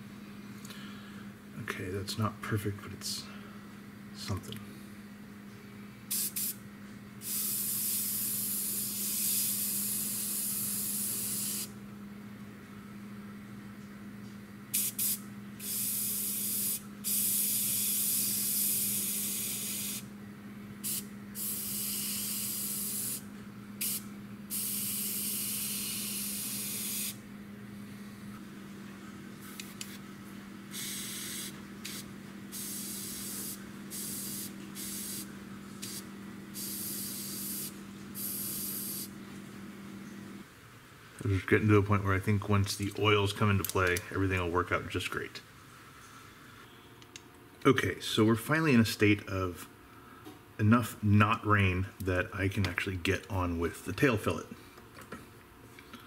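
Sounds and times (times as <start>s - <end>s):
air compressor humming: 5.9s - 12.0s, 14.7s - 40.4s
airbrush spraying bursts of air: 6.1s - 6.6s, 7.2s - 11.7s, 14.7s - 20.0s, 20.8s - 23.2s, 23.8s - 27.2s, 30.7s - 39.1s.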